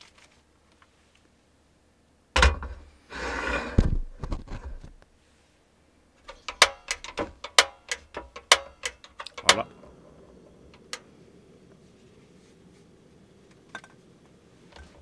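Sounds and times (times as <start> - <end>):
gas burner rushing: 2.6 - 4.0, 6.3 - 15.0
sharp clicks and knocks: 6.2 - 11.1.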